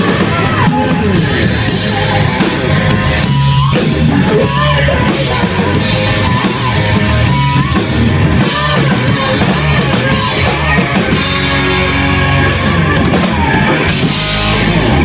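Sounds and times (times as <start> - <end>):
distorted electric guitar: 0.0 - 15.0
drum kit: 0.0 - 15.0.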